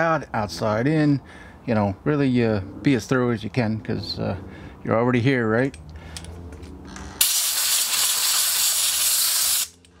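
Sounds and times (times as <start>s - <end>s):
compressed air blast: 7.2s - 9.8s.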